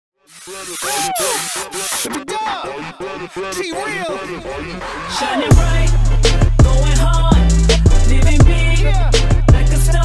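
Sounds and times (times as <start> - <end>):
loud hissing noise: 0.3 - 2.1
voice calling hey: 0.3 - 2.2
hip-hop beat: 0.3 - 10.0.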